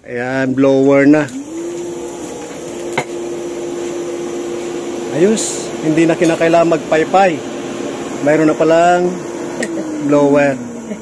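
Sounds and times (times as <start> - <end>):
electric blower humming: 0.7 - 11.0.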